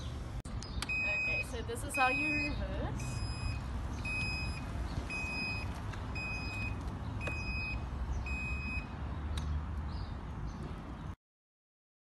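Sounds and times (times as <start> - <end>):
high-pitched reverse warning beeps: 0.9 - 8.9.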